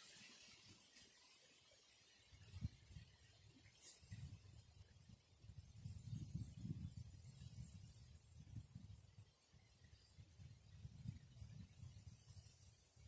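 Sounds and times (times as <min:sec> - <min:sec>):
wind rumbling on microphone: 0:02.4 - 0:13.0.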